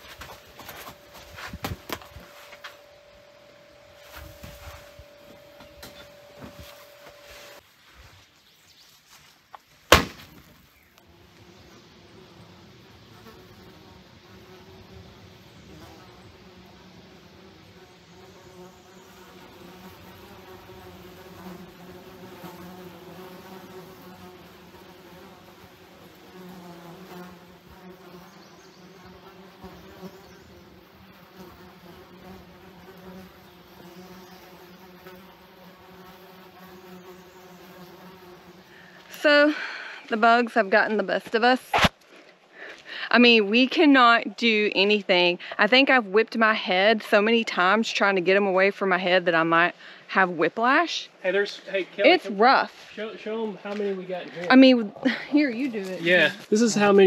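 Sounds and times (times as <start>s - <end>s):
horse flies buzzing: 0.0s - 7.7s, 9.9s - 42.0s
sharp snap: 9.9s - 10.5s, 41.7s - 42.0s.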